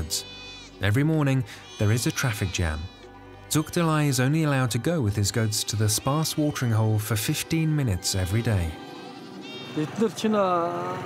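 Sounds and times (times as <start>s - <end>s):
goats and sheep bleating: 0.0s - 3.1s, 3.8s - 10.2s.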